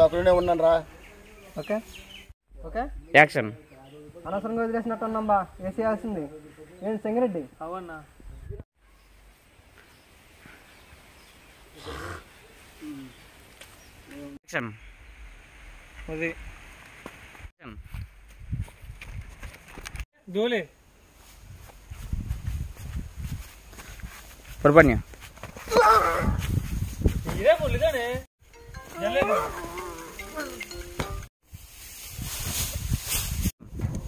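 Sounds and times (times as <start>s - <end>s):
men shouting: 25.7s - 26.4s, 29.0s - 30.6s
person humming: 29.3s - 31.0s.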